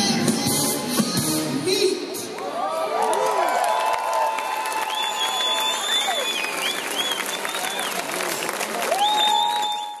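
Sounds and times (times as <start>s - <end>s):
crowd applauding: 2.8s - 10.0s.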